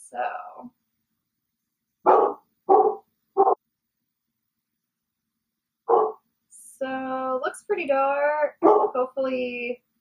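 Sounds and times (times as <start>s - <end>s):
dog barking: 2.1s - 3.6s, 5.9s - 6.2s, 8.6s - 9.0s.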